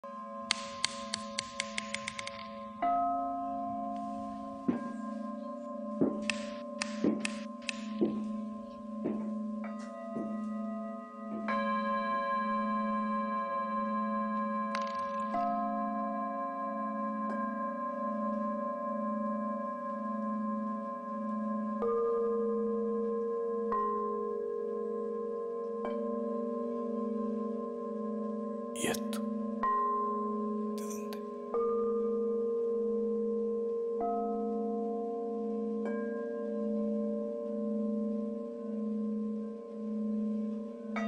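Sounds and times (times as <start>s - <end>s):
ambient music with held tones: 0.0s - 41.0s.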